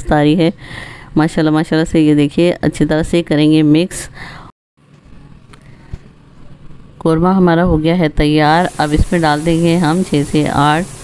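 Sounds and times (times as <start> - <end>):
pot simmering hiss: 8.4 - 11.0.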